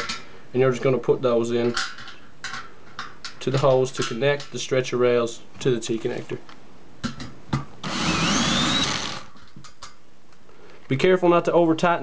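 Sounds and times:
cordless drill motor whine: 7.8 - 9.3.

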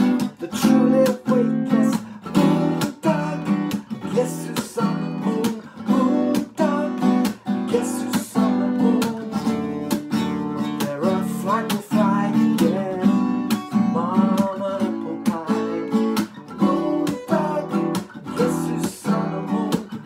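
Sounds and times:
acoustic guitar strummed: 0.0 - 20.0.

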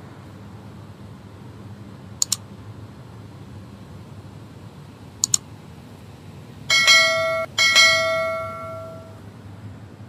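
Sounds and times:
bell ringing: 6.7 - 9.2.

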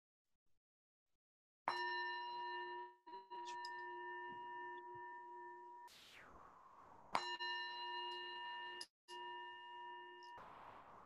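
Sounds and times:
singing bowl ringing: 7.2 - 10.4.

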